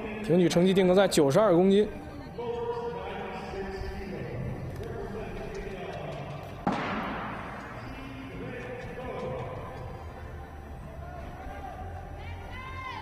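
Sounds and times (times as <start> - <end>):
indistinct voices in a hall: 0.0 - 13.0.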